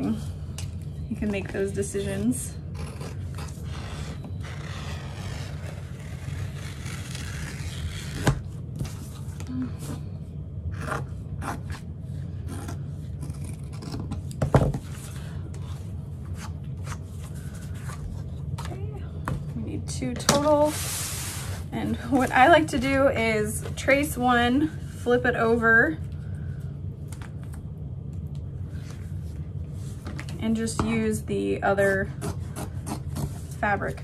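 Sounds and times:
low hum: 0.0s - 34.0s.

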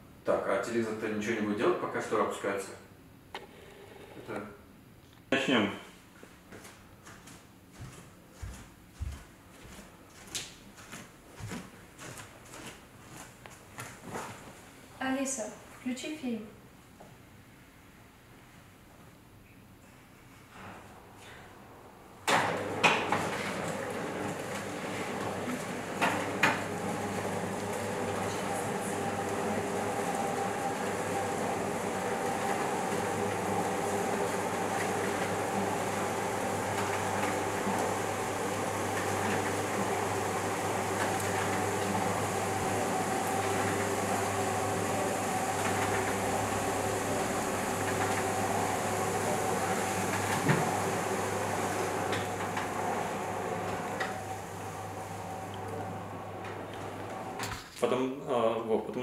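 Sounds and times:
window blind motors humming: 20.5s - 57.7s.

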